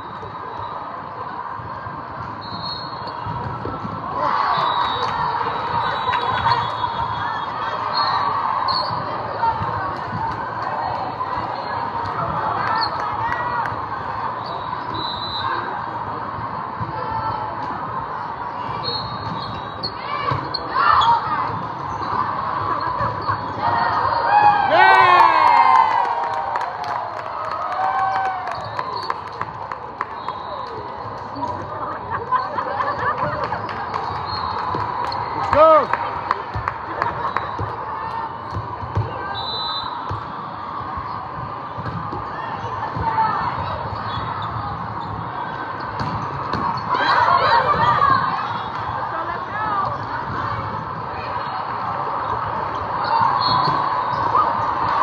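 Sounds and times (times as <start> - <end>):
crowd murmur in echoing hall: 0.0 - 24.8, 25.5 - 55.0
players' voices: 0.1 - 55.0.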